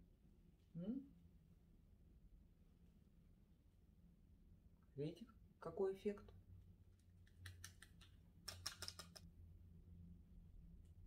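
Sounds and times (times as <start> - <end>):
makeup tools clicking: 7.2 - 9.3.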